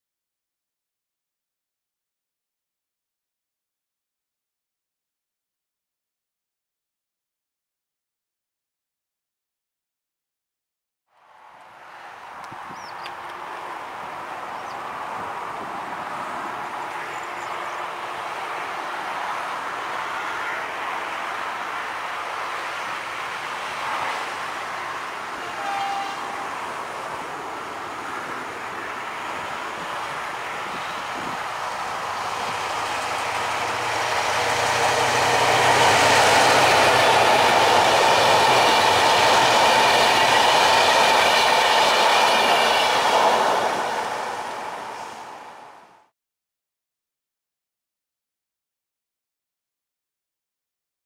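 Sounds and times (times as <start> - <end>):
diesel locomotive engine: 11.2 - 46.1
train wheels on rails: 11.6 - 46.1.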